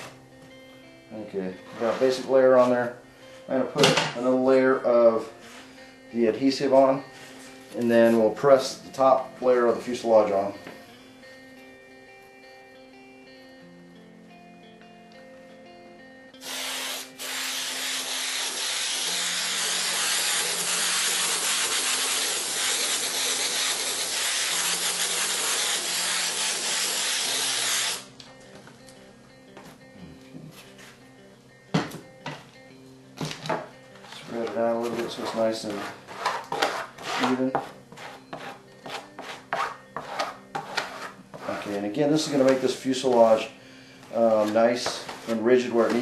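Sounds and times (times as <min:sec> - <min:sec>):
aerosol can spraying: 0:16.4 - 0:28.1.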